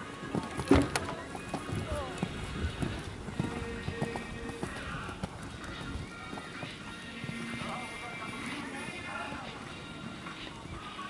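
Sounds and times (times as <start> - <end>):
background music: 0.0 - 11.0
horse hooves thudding on sand: 0.2 - 10.4
voices: 0.4 - 11.0.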